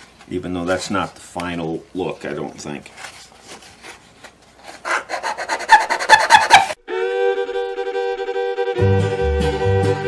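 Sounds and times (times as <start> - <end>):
knife scraping wood: 3.0 - 6.8
fiddle music: 6.8 - 10.0.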